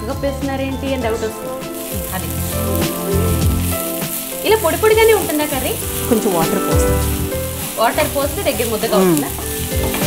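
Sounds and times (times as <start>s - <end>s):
oil sizzling in a frying pan: 0.0s - 10.0s
wooden spatula stirring: 1.3s - 10.0s.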